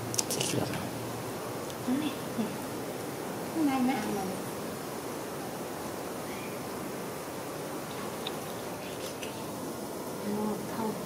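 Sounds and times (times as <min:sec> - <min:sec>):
background hiss: 0:00.0 - 0:11.0
faint high chirp: 0:06.2 - 0:06.7.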